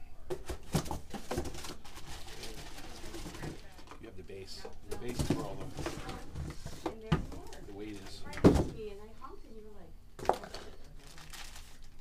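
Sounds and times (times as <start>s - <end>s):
plastic wrapping rustling: 0.4s - 8.4s, 10.2s - 12.0s.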